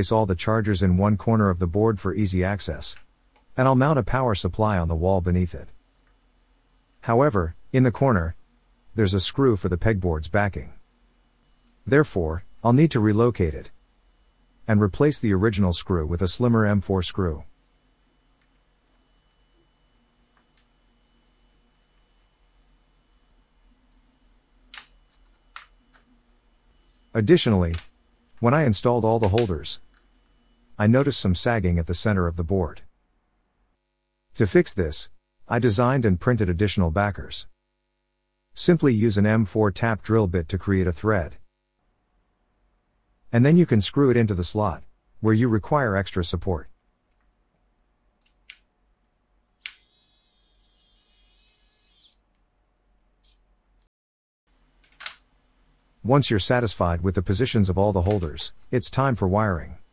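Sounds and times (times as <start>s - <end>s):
electric screwdriver motor whine: 49.6s - 52.2s.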